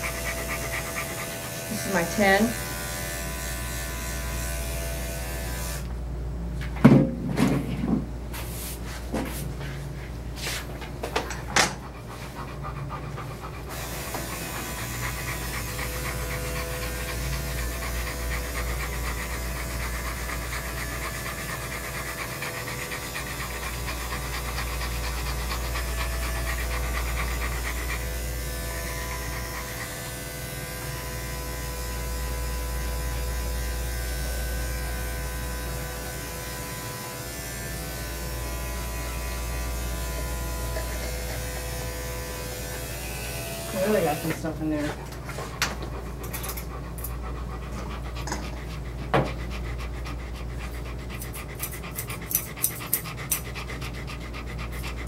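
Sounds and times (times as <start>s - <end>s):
dog panting: 0.0s - 3.1s, 9.5s - 55.0s
electric clippers running: 0.0s - 6.0s, 13.6s - 44.9s.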